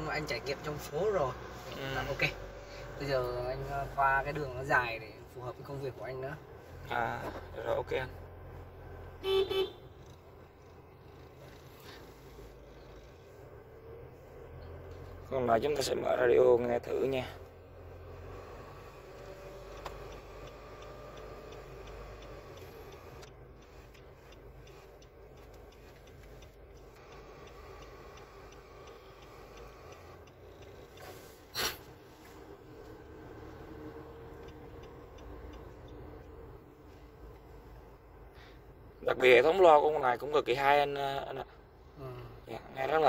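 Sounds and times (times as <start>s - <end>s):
car radio tuning between stations: 0.0s - 8.9s, 10.3s - 38.0s
diesel engine hum: 0.0s - 43.0s.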